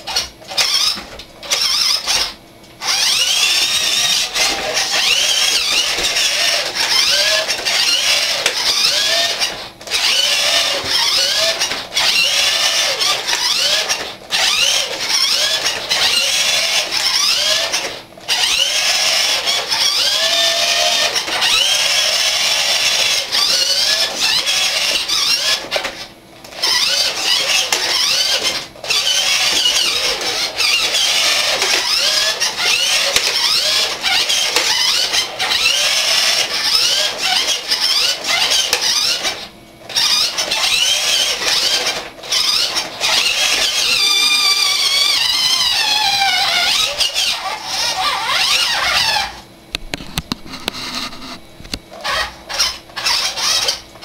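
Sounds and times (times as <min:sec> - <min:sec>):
toy truck electric motor whining: 0:00.0 - 0:54.0.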